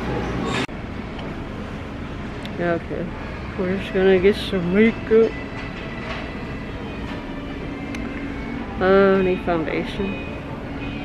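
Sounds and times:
shop interior rumble: 0.0 - 11.0.

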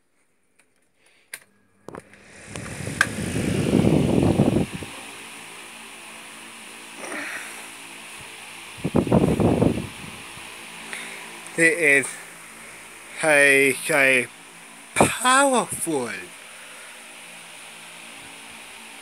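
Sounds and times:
fan whirring: 1.8 - 19.0
airflow rumbling on microphone: 1.9 - 6.9, 7.8 - 11.4.

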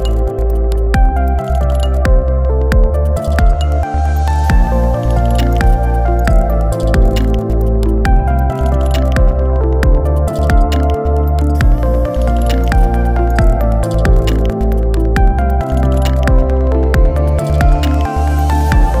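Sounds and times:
music with steady beat and bass: 0.0 - 19.0.

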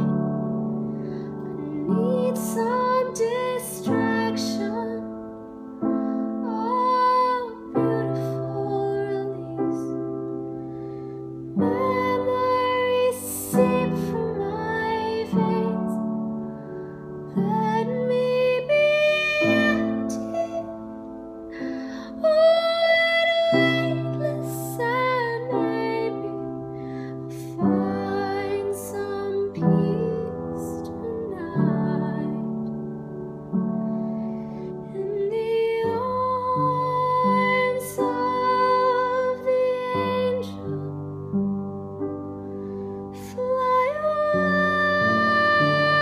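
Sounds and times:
woman singing a ballad: 0.0 - 10.5, 11.5 - 33.0, 34.6 - 41.4, 43.0 - 46.0
piano chords: 0.0 - 46.0
singer breathing: 0.8 - 1.5, 10.6 - 11.4, 26.7 - 27.3, 42.4 - 43.2.

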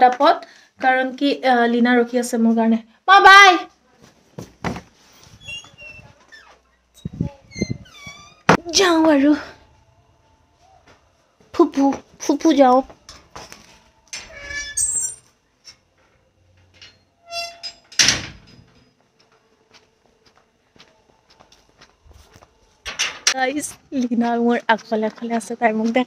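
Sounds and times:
door hinge squeaking: 5.4 - 8.6, 14.2 - 15.3, 16.8 - 18.6
door shutting with loud bang: 18.0 - 18.8.

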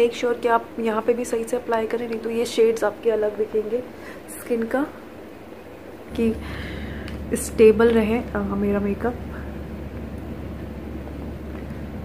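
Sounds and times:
faint background hiss: 0.0 - 12.0
low room hum: 0.0 - 12.0.

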